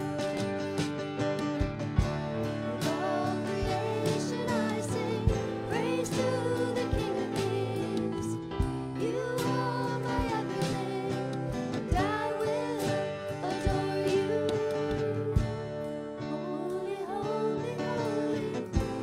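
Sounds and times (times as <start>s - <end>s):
drum hits: 0.0s - 16.0s
guitar and keyboard chords: 0.0s - 19.0s
voices singing: 2.4s - 19.0s.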